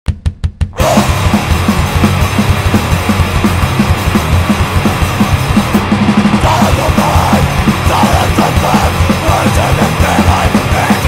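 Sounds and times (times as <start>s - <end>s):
driving drum beat: 0.1s - 11.0s
distorted guitars and bass: 0.2s - 11.0s.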